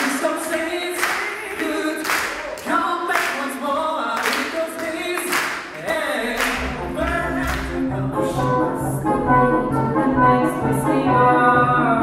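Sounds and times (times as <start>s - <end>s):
hand claps: 0.0s - 7.8s
men singing a cappella: 0.0s - 8.7s
low bass line: 6.4s - 12.0s.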